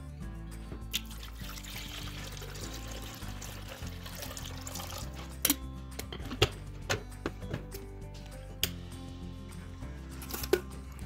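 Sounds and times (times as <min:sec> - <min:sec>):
background music with held notes: 0:00.0 - 0:11.0
water pouring into coffee maker: 0:00.9 - 0:05.4.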